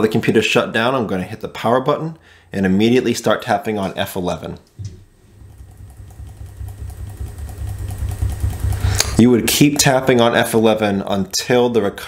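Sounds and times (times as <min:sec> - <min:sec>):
laptop low hum: 0:04.8 - 0:11.3.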